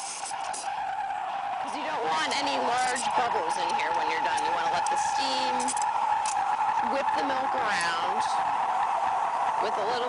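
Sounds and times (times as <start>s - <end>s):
steam wand hissing milk: 0.0s - 0.7s.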